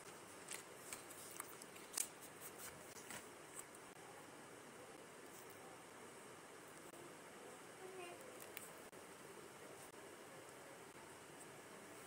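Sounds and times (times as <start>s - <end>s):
paper rustling: 0.0s - 3.7s.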